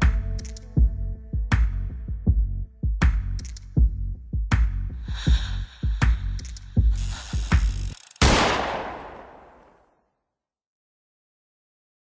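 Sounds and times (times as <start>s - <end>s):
gunshot sound effect: 8.2s - 9.8s.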